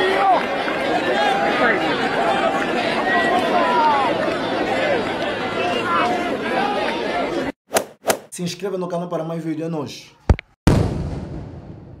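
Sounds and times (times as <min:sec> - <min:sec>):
loud boom-like burst: 0:10.7 - 0:12.0.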